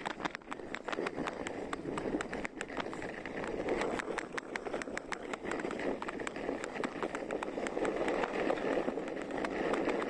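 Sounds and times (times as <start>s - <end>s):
ski clicks and knocks: 0.0s - 10.0s
skis scraping on snow: 0.0s - 10.0s.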